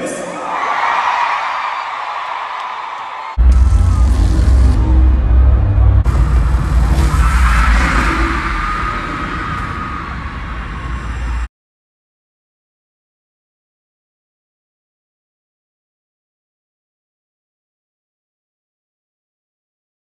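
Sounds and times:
crowd screaming: 0:00.1 - 0:11.5
loud live music with deep bass: 0:03.4 - 0:10.0.

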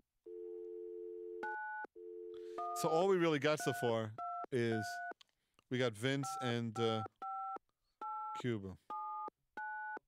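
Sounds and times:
telephone dial tone: 0:00.3 - 0:02.8, 0:08.9 - 0:10.0.

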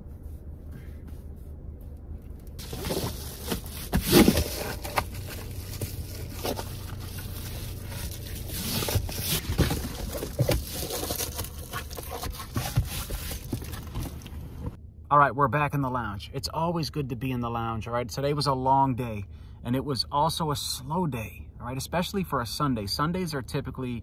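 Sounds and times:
steady low hum: 0:00.0 - 0:24.0
foil scraping and crinkling: 0:02.6 - 0:14.4.

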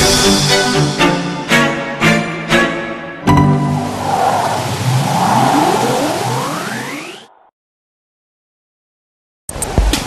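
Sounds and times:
engine-like rush rising in pitch: 0:03.2 - 0:07.5.

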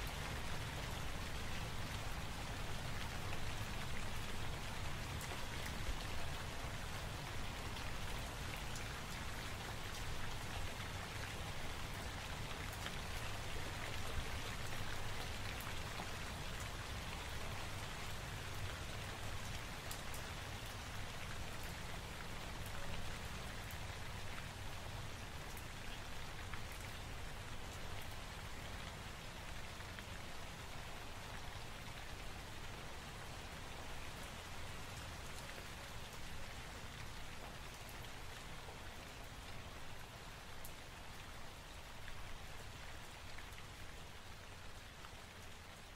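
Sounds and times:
steady rain falling: 0:00.0 - 0:45.9.

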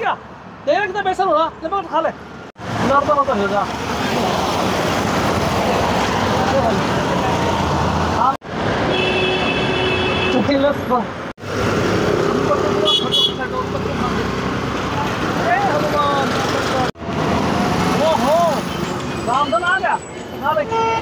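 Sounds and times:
road traffic noise: 0:00.0 - 0:21.0.

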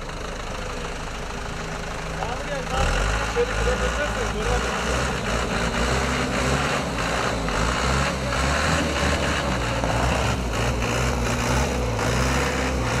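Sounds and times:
truck engine running: 0:00.0 - 0:13.0.

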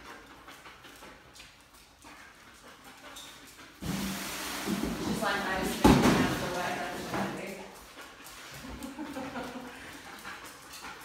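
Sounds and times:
dog panting: 0:00.0 - 0:04.1, 0:05.2 - 0:11.0.

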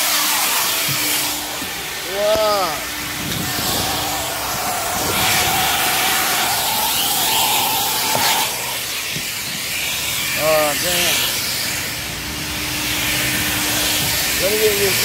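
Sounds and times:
shop vacuum running: 0:00.0 - 0:15.0.

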